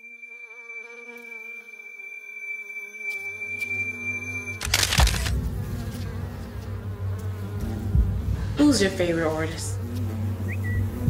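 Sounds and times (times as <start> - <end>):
bee swarm buzzing: 0.0 - 11.0.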